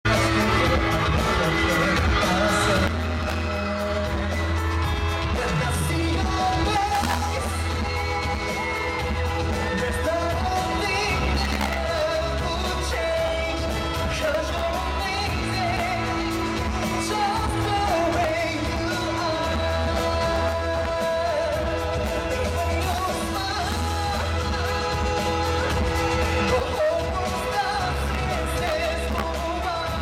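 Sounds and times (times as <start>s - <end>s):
live band playing: 0.0s - 30.0s
man singing: 0.0s - 30.0s.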